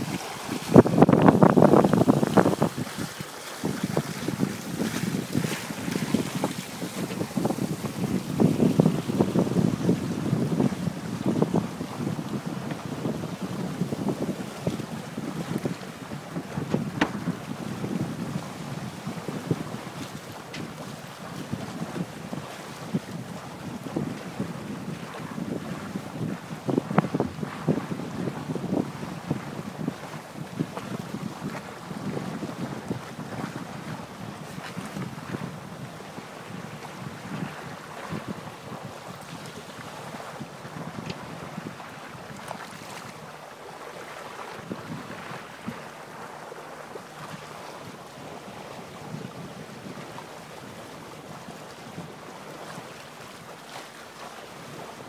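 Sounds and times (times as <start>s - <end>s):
water splashing along hull: 0.0s - 55.0s
wind buffeting microphone: 0.0s - 55.0s.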